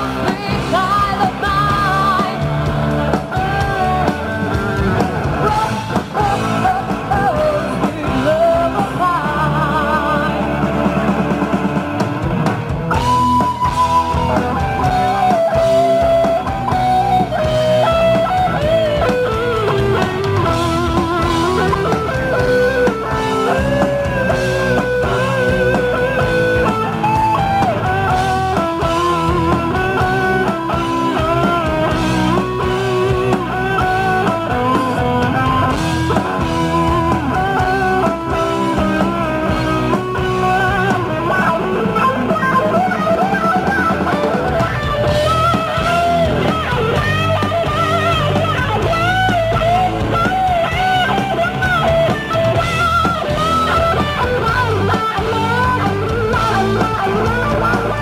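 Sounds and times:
electric guitar lead lines: 0.0s - 58.0s
live rock band playing: 0.0s - 58.0s.

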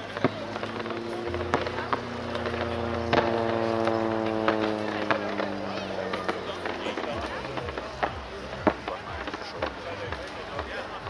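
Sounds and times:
propeller aircraft engine drone: 0.0s - 11.0s
pyrotechnic cracks and pops: 0.0s - 11.0s.

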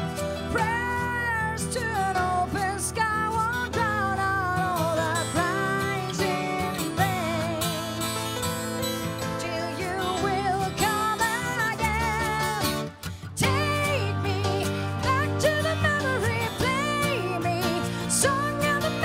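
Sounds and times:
keyboard: 0.0s - 19.0s
strummed acoustic guitar: 0.0s - 19.0s
woman singing with vibrato: 0.1s - 8.3s, 9.1s - 19.0s.

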